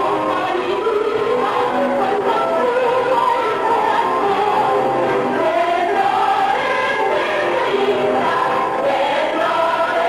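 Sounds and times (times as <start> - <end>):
group singing with music: 0.0 - 10.0.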